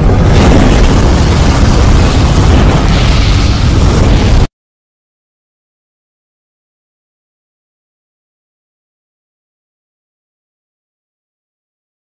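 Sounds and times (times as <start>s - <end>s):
fiery explosion blast: 0.0s - 4.5s.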